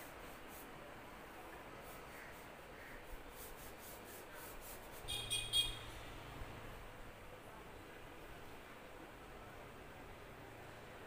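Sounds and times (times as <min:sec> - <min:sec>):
crayon scratching on paper: 0:01.8 - 0:05.1.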